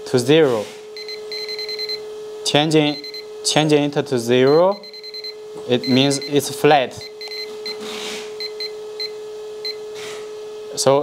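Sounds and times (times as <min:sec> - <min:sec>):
short electronic beeps: 0:01.0 - 0:02.0, 0:04.5 - 0:07.8.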